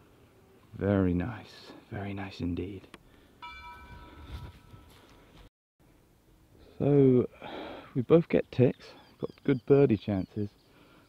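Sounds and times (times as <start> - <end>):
bell-like chime: 3.4 - 5.0.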